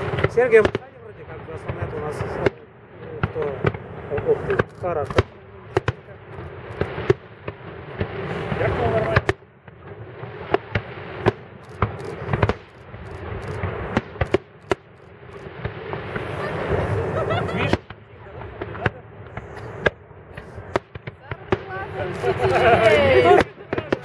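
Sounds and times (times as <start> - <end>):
fireworks bursting: 0.0 - 24.0
rush of noise: 10.9 - 17.9.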